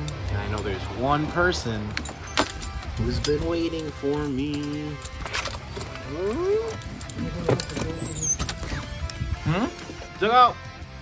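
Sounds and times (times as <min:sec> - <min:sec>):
background music: 0:00.0 - 0:11.0
short high door squeak: 0:07.7 - 0:08.8.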